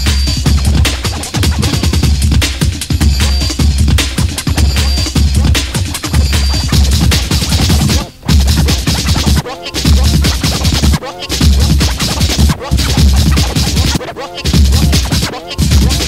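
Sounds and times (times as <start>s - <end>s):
rave music with breakbeats: 0.0s - 16.0s
record scratching: 0.0s - 16.0s.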